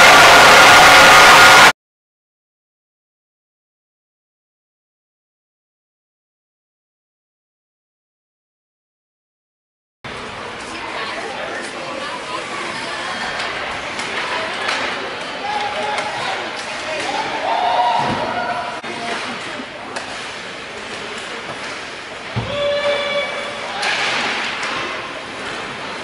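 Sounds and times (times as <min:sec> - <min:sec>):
hockey sticks and puck clicks: 0:13.2 - 0:17.4, 0:18.8 - 0:23.0, 0:23.7 - 0:26.0.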